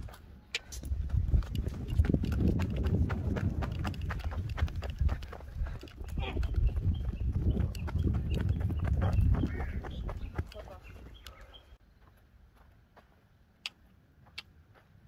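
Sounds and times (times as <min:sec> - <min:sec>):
horse hoofbeats on sand: 0:00.9 - 0:11.6.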